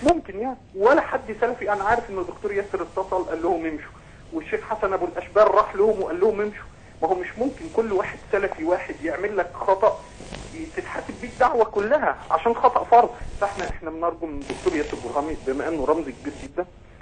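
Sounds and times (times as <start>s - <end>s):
man talking over telephone line: 0.0s - 16.8s.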